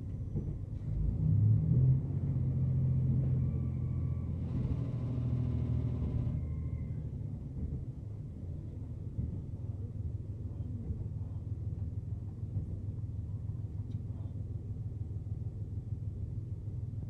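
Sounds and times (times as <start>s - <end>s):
railcar engine drone: 0.0s - 17.0s
wheels rumbling on rails: 0.0s - 17.0s.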